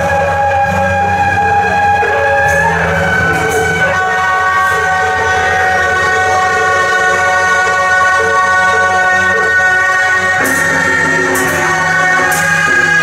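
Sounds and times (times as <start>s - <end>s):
wind instruments holding notes: 0.0s - 13.0s.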